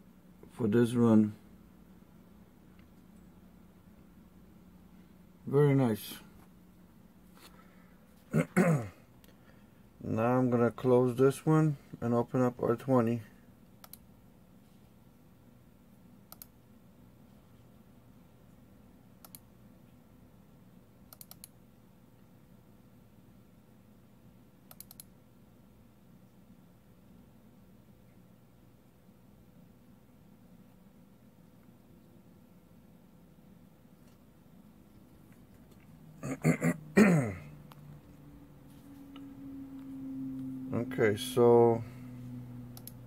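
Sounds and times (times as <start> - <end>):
faint steady hum: 0.0 - 43.0
man clearing his throat: 8.3 - 9.1, 36.2 - 37.6.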